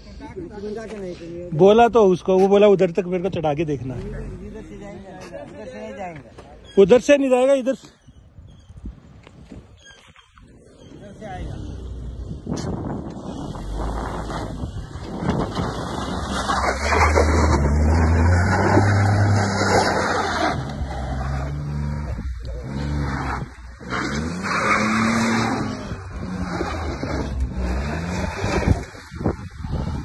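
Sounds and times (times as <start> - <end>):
car engine revving hard: 15.5 - 30.0.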